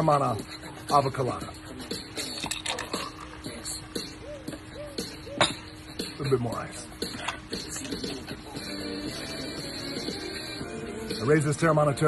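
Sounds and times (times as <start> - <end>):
background music: 0.0 - 12.0
liquid pouring over ice: 2.2 - 3.4.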